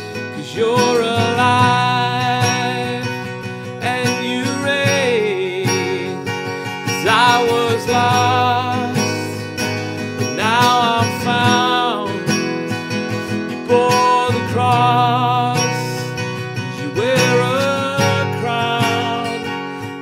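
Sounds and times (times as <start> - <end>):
acoustic guitar strumming: 0.0 - 20.0
man singing worship song: 0.3 - 9.4, 10.2 - 12.4, 13.6 - 19.6.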